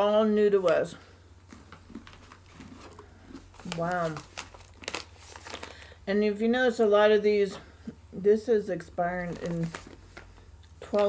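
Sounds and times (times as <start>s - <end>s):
plastic snack pouch crinkling: 1.5s - 6.0s, 9.3s - 11.0s.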